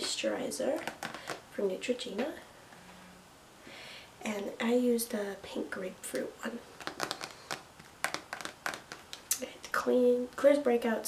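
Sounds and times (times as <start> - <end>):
fingernails tapping plastic bottle: 6.8 - 9.2.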